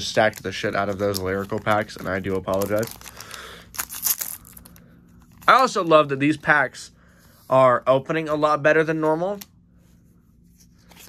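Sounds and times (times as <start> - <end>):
foil wrapper tearing and crinkling: 0.0 - 4.8.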